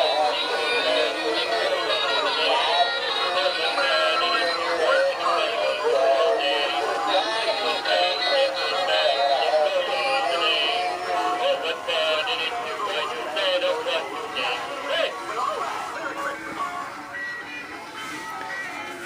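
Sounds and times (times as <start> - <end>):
tinny electronic christmas songs: 0.0 - 19.0.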